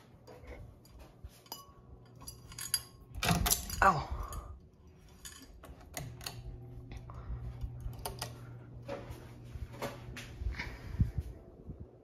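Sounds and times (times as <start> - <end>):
ceiling fan motor humming: 0.0 - 12.0
light clicks and clinks: 0.2 - 7.1.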